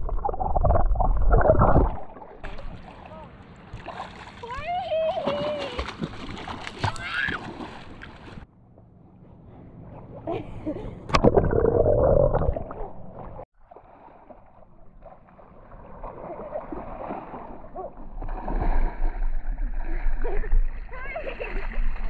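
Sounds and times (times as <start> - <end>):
water splashing: 0.0 - 8.5, 11.1 - 22.0.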